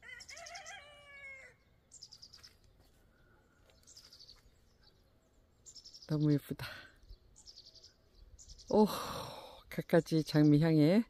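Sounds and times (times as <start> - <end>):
songbird trills: 0.0 - 11.0.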